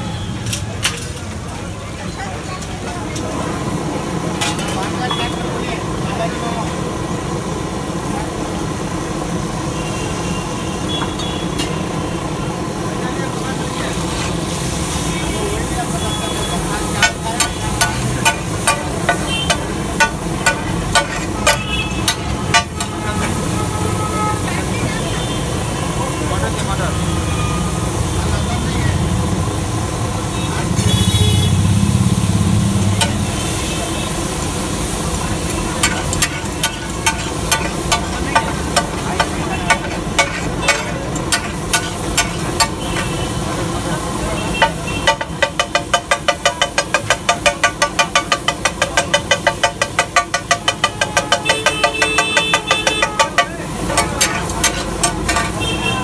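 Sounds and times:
street noise: 0.0 - 56.0
metal spatula striking a griddle: 16.8 - 23.4, 32.9 - 33.5, 35.2 - 43.4, 44.5 - 55.9.

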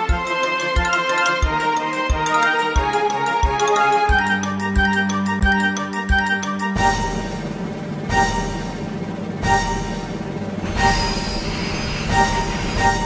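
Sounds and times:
background music: 0.0 - 13.0
train running at speed: 0.0 - 13.0
high wheel squeal: 10.6 - 13.0.

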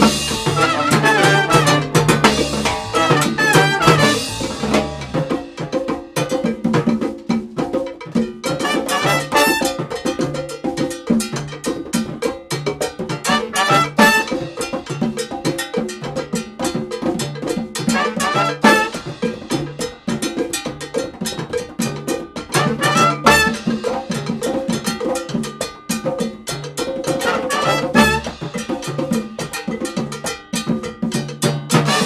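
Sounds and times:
cowbell beat: 0.0 - 32.0
latin big band playing: 0.0 - 32.0
held horn note: 0.5 - 4.6.

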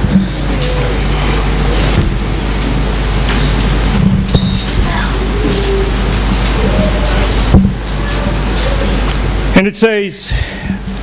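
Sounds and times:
congregation rustling and shuffling: 0.0 - 11.0.

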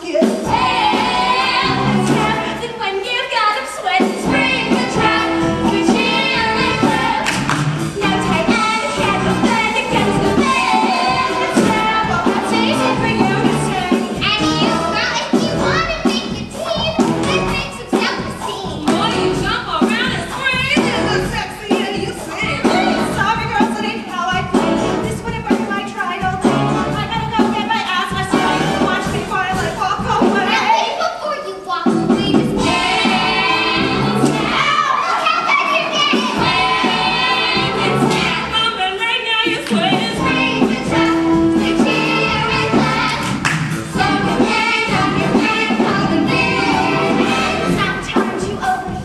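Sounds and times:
women singing and calling: 0.0 - 31.3, 31.9 - 43.3, 44.0 - 49.0
musical theatre pit band: 0.0 - 49.0
instrumental accompaniment: 0.1 - 3.2, 3.8 - 30.8, 31.6 - 35.0, 35.6 - 49.0.

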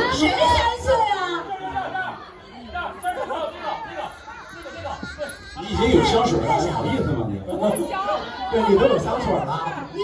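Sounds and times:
several people talking at once: 0.0 - 10.0.

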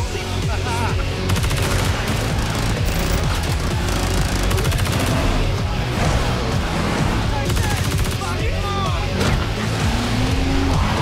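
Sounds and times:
loud film music with heavy bass: 0.0 - 11.0
rapid automatic gunfire: 1.2 - 5.4, 7.5 - 8.4.

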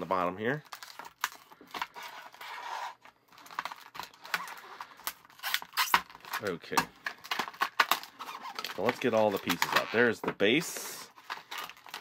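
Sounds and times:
plastic packaging rustling: 0.0 - 12.0
plastic packaging clicks and crackles: 0.1 - 2.4, 3.0 - 12.0.

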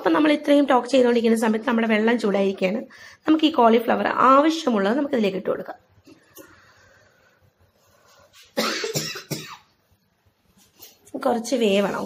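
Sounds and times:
person coughing: 8.6 - 9.7.

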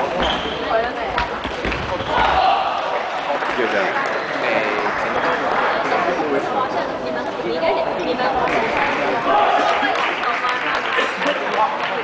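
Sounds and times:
voices in large hall: 0.0 - 12.0.

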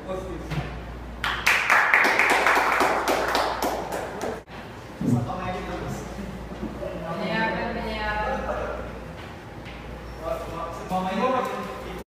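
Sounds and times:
people clapping: 1.2 - 4.5.

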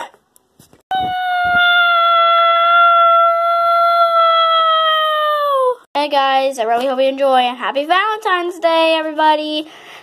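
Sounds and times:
child wailing: 0.9 - 5.8.

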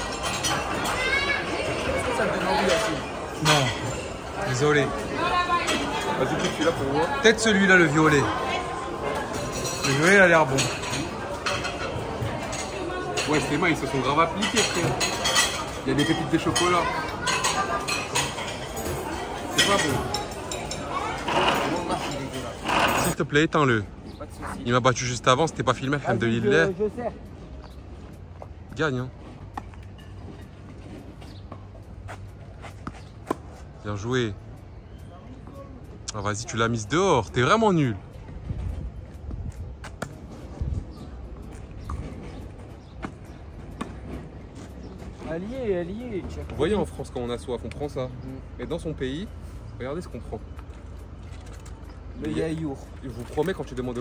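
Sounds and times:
cutlery and crockery clinking: 0.0 - 1.4, 2.0 - 4.7, 9.2 - 23.2
faint outdoor background noise: 0.0 - 54.0
dining-room clatter: 9.3 - 23.2.

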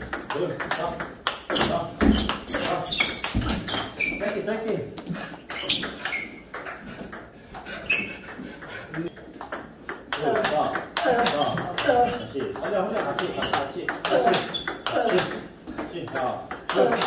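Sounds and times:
table tennis balls clicking: 0.0 - 17.0.

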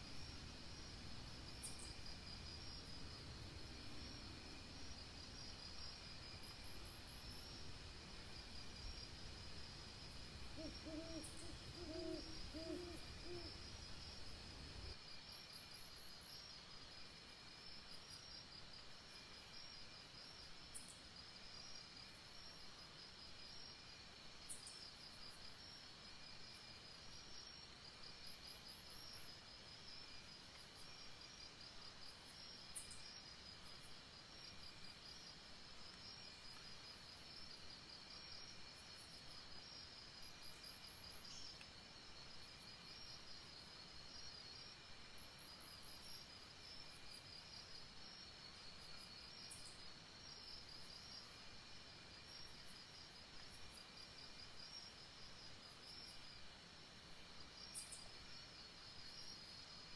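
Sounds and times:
night insects chirping: 0.0 - 59.9
owl hooting: 10.4 - 14.9.

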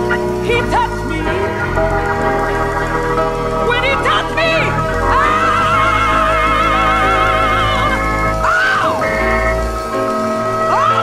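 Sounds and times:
sustained backing chords: 0.0 - 11.0.

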